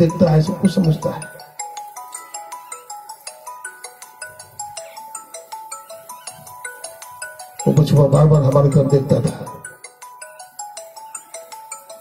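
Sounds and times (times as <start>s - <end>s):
mobile phone ringtone: 0.0s - 12.0s.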